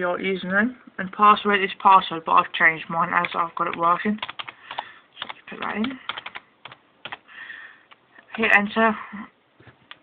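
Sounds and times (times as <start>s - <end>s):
computer keyboard typing: 3.1s - 7.3s, 7.9s - 8.6s.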